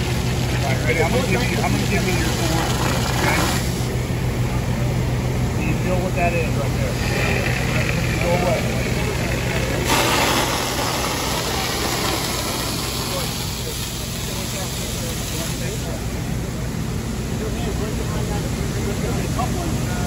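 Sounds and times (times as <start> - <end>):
water rushing from hoses: 0.0 - 4.3, 5.6 - 16.4
pumping engine drone: 0.0 - 20.0.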